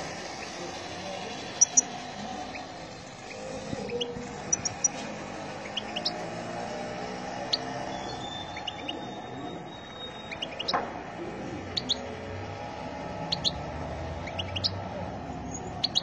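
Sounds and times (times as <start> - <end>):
bird chirping: 0.0 - 12.2, 13.0 - 16.0.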